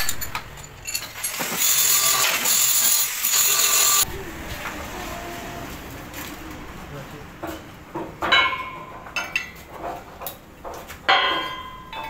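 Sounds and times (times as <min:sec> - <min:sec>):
lathe cutting metal: 0:01.2 - 0:06.2.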